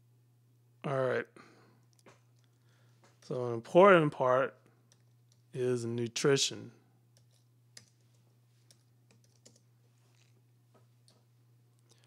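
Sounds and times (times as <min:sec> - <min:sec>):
low electrical hum: 0:00.0 - 0:12.0
keyboard typing: 0:07.2 - 0:10.3.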